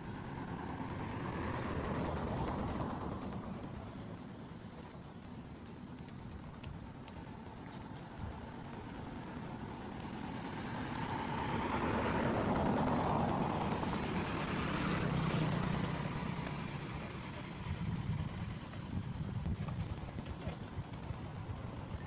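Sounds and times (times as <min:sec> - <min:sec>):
vehicle passing by: 0:09.7 - 0:19.1.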